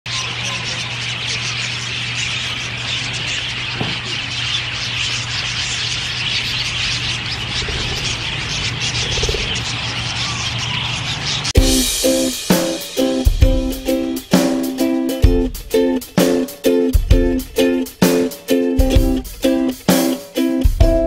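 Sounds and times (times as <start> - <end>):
budgerigars chattering: 0.1 - 20.2.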